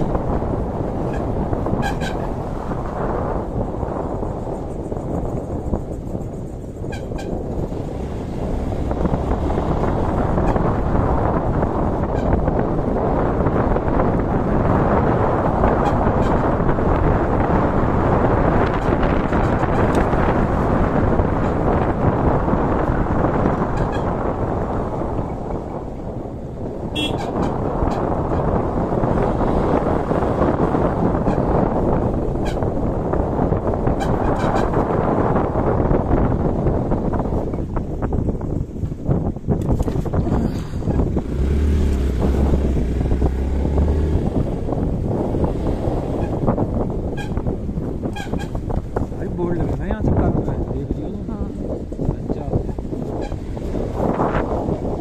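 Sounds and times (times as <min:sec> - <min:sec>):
wind rushing over microphone: 0:00.0 - 0:55.0
horn toot: 0:01.0 - 0:02.5, 0:06.8 - 0:07.4, 0:10.0 - 0:10.9, 0:15.6 - 0:16.7, 0:26.9 - 0:28.5, 0:33.9 - 0:35.0, 0:46.0 - 0:48.7.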